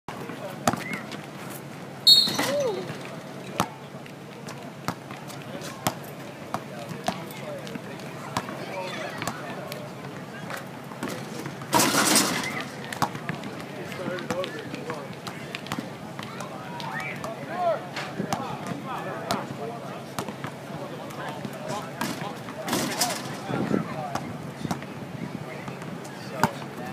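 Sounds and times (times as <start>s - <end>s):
faint voices: 2.3s - 26.9s.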